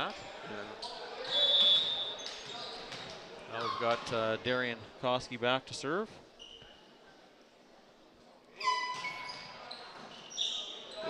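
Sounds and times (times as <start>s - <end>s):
crowd noise: 0.0s - 11.0s
sneaker squeaks on hardwood: 0.8s - 3.8s, 8.6s - 11.0s
held whistle-like tone: 1.4s - 2.1s.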